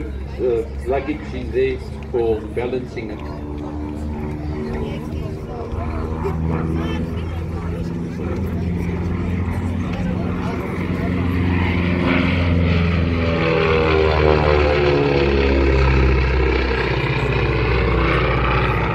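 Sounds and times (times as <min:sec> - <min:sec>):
propeller plane flying past: 0:00.0 - 0:18.9.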